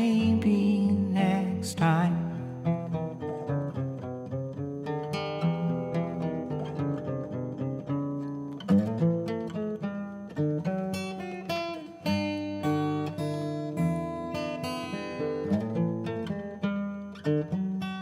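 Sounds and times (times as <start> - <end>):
fingerpicked acoustic guitar: 0.0 - 18.0.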